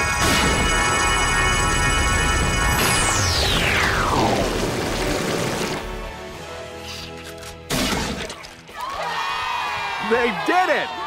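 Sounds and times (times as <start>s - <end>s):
loud crash: 0.0s - 6.0s.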